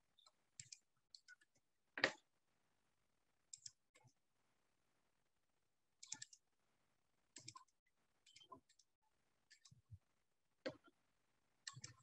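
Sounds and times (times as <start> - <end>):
computer mouse clicks: 0.2 - 2.2, 3.5 - 4.2, 6.0 - 6.4, 7.4 - 8.9, 9.5 - 9.9, 11.6 - 12.0.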